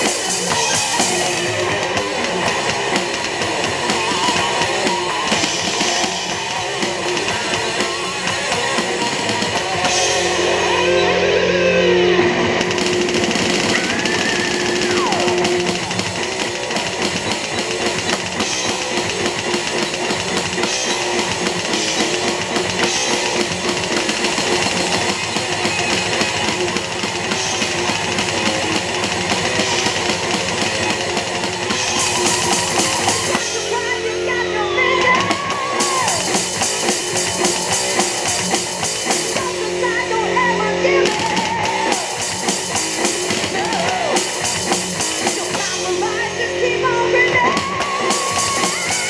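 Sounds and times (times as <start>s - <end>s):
thrash metal recording: 0.0s - 34.0s, 35.2s - 40.4s, 41.0s - 46.4s, 47.6s - 49.0s
drum kit rock beat with cymbals: 0.0s - 49.0s.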